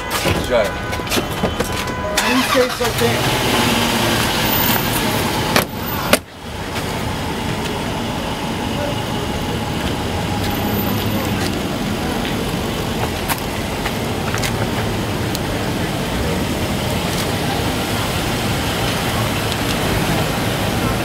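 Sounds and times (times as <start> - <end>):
traffic noise: 0.0 - 21.0
car engine running: 0.9 - 21.0.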